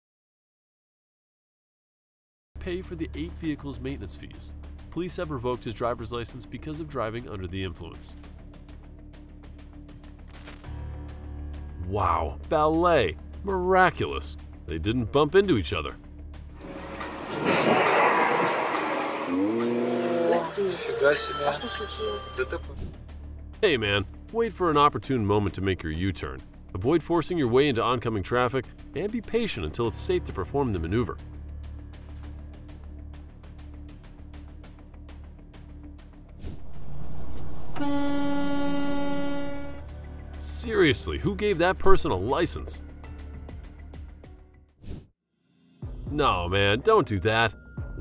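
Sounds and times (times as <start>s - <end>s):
rush of noise: 16.6s - 19.6s, 36.4s - 39.1s
cars on a wet road: 16.6s - 20.9s
steady pitched tone: 36.5s - 39.9s
vehicle horn blast: 37.7s - 39.9s.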